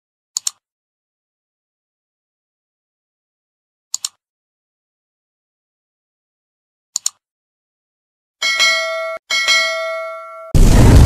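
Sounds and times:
notification bell ringing: 8.4s - 10.6s.

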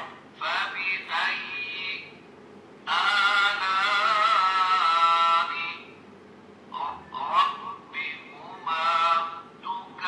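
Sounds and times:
recorded chanted recitation from speaker: 0.0s - 2.2s, 2.8s - 6.0s, 6.7s - 10.0s.

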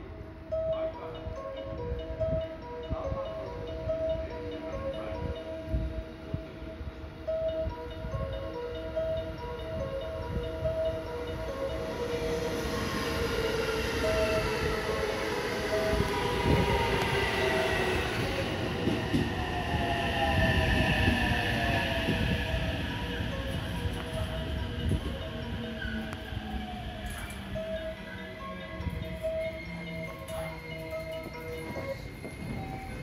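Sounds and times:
train wheels rumbling on rails: 9.0s - 33.0s.

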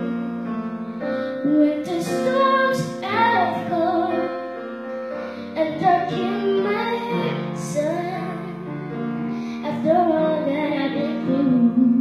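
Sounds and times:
digital piano chords: 0.0s - 12.0s
boy singing into a microphone: 1.4s - 4.4s, 5.5s - 8.7s, 9.6s - 12.0s.

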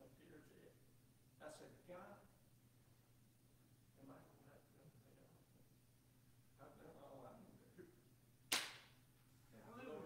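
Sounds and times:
sharp crack: 8.5s - 9.0s.

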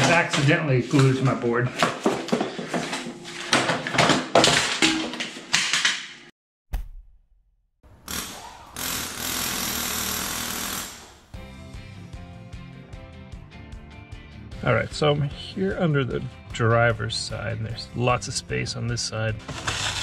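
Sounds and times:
music: 11.3s - 20.0s.

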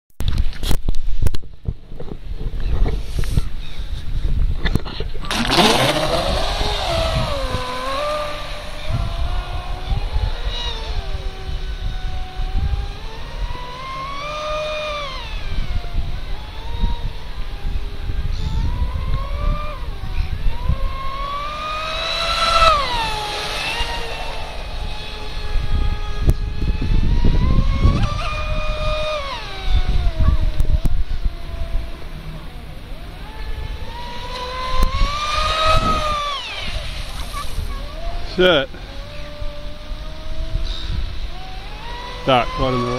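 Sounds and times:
wind rumble on microphone: 0.2s - 42.9s
electric boat motor whining: 5.2s - 42.9s.

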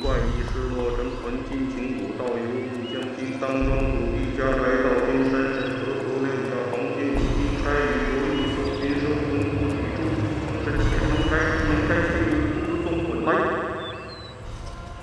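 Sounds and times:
man chanting: 0.0s - 14.1s.

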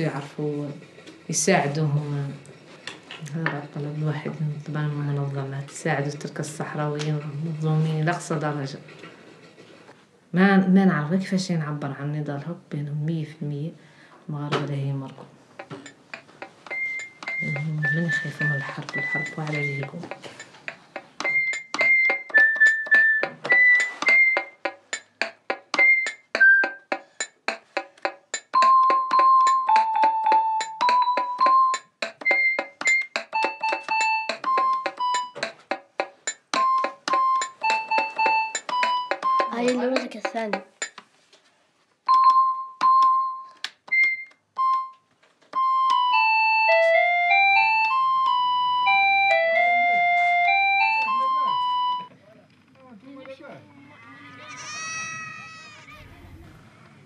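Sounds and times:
toy keyboard melody: 16.6s - 25.0s, 25.8s - 27.3s, 28.5s - 40.1s, 42.1s - 52.1s.

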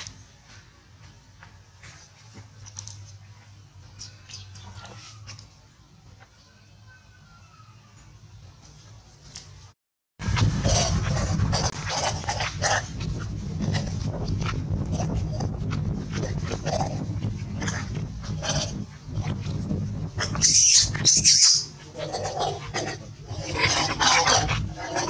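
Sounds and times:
steady low rumble: 10.2s - 25.0s
macaques calling: 20.2s - 25.0s.

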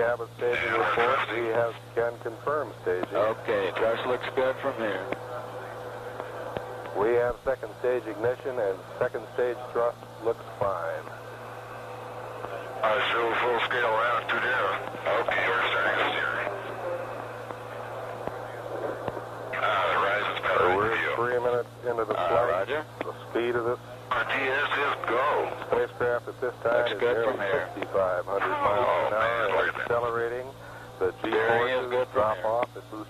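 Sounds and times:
radio voice transmissions: 0.0s - 11.7s, 12.3s - 33.0s
steady low hum: 0.0s - 33.0s.

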